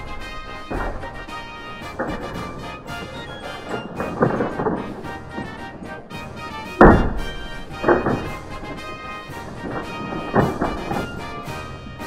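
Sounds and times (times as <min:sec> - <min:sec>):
background music: 0:00.0 - 0:12.0
plastic toy falling clatter: 0:00.0 - 0:12.0.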